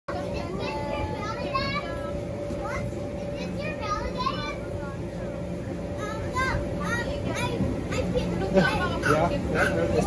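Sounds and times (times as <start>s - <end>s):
steady hum: 0.1s - 10.0s.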